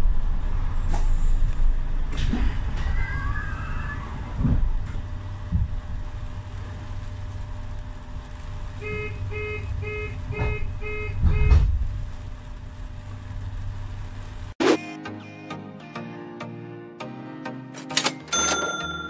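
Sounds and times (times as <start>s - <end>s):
street traffic rumble: 0.0s - 14.6s.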